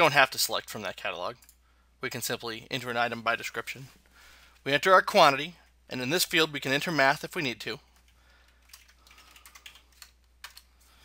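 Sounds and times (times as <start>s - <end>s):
faint keyboard typing: 7.9s - 11.0s.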